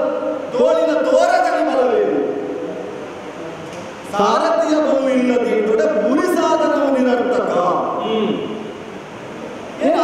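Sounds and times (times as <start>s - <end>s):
man declaiming over loudspeaker: 0.0s - 2.6s, 4.1s - 8.7s, 9.8s - 10.0s
hall room noise: 0.0s - 10.0s.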